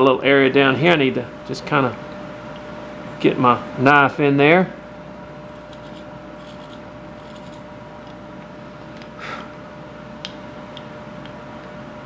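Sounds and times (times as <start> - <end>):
steady room hum: 0.0 - 12.0
knife scraping wood: 5.5 - 7.6.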